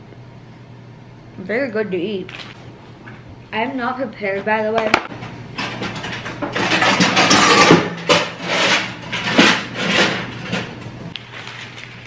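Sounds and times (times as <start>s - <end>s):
paper and cardboard rustling: 11.2s - 12.0s.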